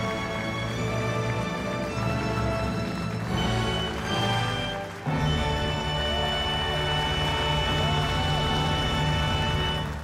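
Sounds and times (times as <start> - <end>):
orchestra playing held notes: 0.0 - 10.0.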